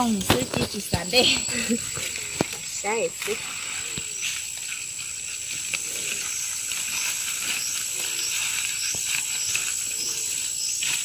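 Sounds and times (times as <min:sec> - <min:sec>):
faint rustling of leaves: 0:00.0 - 0:11.0
high-pitched insect drone: 0:01.0 - 0:11.0.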